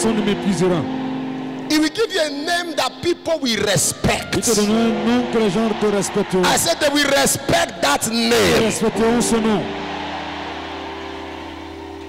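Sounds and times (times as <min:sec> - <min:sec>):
church keyboard sustained chord: 0:00.0 - 0:12.0
congregation noise: 0:00.0 - 0:12.0.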